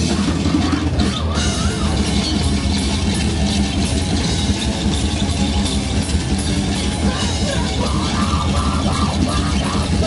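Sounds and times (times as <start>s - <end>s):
hardcore punk band playing: 0.0s - 10.0s.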